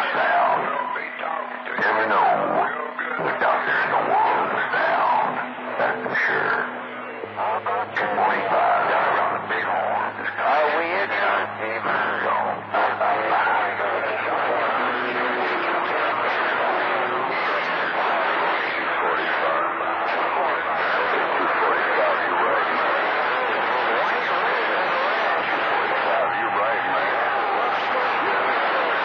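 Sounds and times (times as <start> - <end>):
garbled radio voices: 0.0 - 29.0
radio static: 0.0 - 29.0
low hum tones: 0.3 - 29.0.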